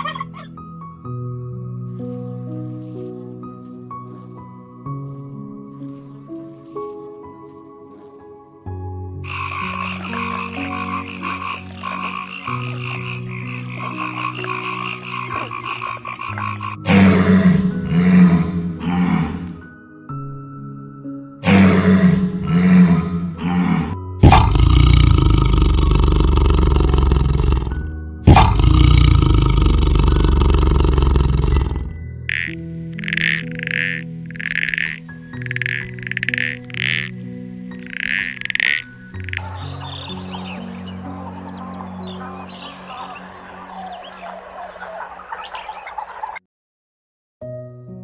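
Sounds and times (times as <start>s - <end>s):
toad calling: 0.0s - 0.6s, 9.2s - 19.6s, 28.3s - 46.4s
soft background music: 0.0s - 46.0s, 47.4s - 48.0s
walruses bellowing and grunting: 9.3s - 19.6s, 21.4s - 27.7s, 28.3s - 37.1s, 37.8s - 45.5s.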